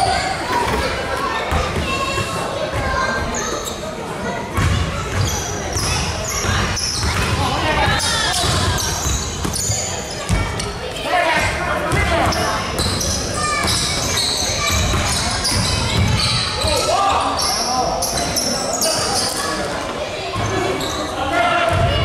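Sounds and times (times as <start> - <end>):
basketball bouncing on court: 4.5 - 10.7, 11.9 - 16.7.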